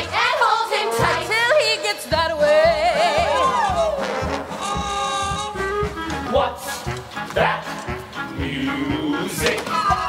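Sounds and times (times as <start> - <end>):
brassy orchestra dance music: 0.0 - 10.0.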